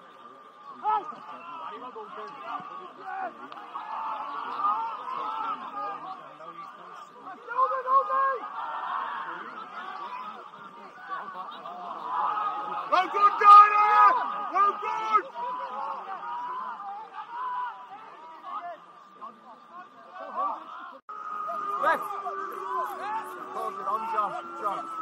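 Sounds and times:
people calling and chatting: 0:00.0 - 0:25.0
loud drawn-out shout: 0:00.7 - 0:06.2, 0:07.0 - 0:18.9, 0:20.1 - 0:25.0
people laughing: 0:08.2 - 0:14.8.

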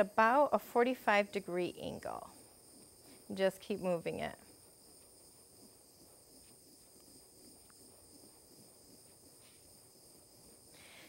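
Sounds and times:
butane torch hissing: 0:01.4 - 0:11.0.

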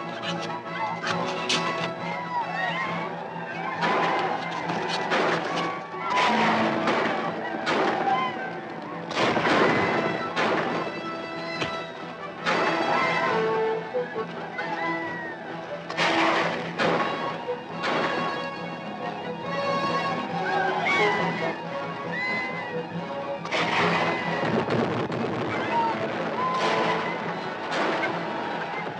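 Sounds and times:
dramatic orchestral music: 0:00.0 - 0:28.9.

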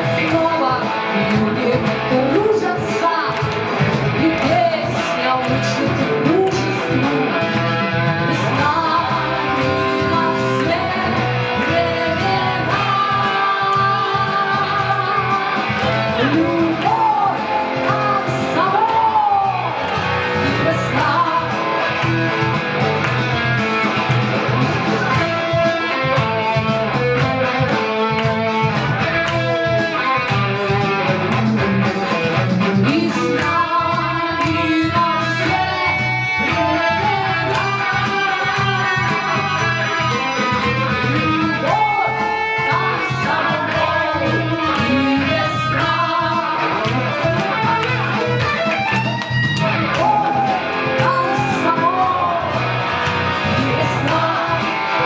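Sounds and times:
woman singing: 0:00.0 - 0:07.4, 0:08.2 - 0:22.1, 0:32.7 - 0:48.0, 0:50.0 - 0:52.6, 0:53.4 - 0:55.0
live pop rock band: 0:00.0 - 0:55.0.

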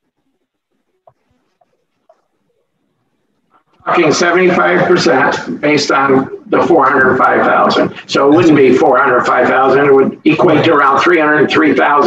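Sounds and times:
person speaking: 0:03.5 - 0:12.0.

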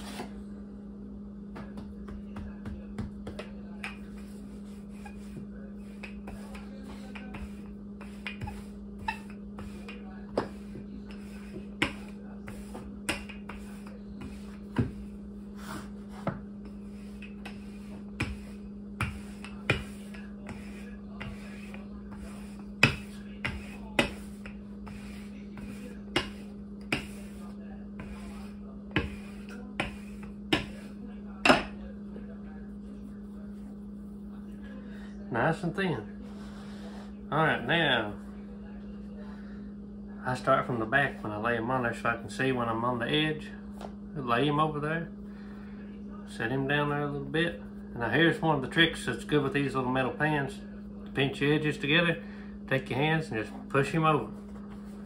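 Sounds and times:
rolling pin knocking on wooden table: 0:22.2 - 0:27.4.

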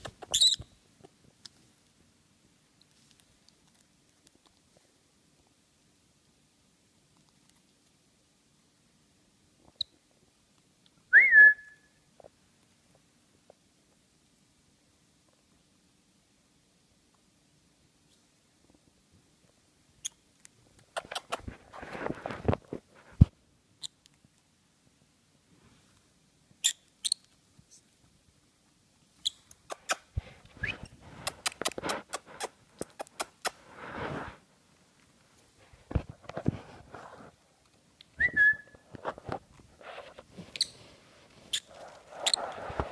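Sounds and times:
parrot chirping and clicking: 0:20.0 - 0:21.4, 0:29.2 - 0:30.0, 0:31.2 - 0:32.2
parrot rising peep: 0:41.5 - 0:42.6.

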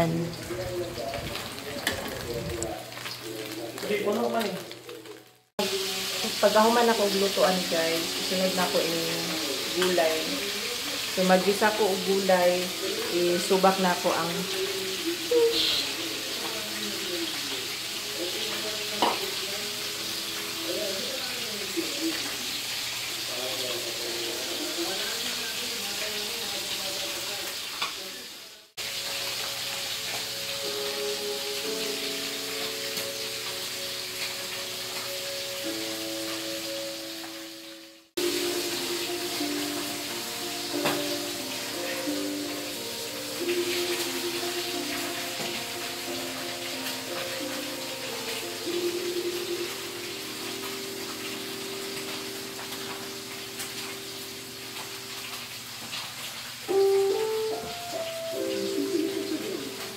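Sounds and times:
fish sizzling in oil: 0:00.0 - 0:59.9
background music: 0:05.2 - 0:21.5, 0:28.8 - 0:54.8, 0:56.7 - 0:59.9.

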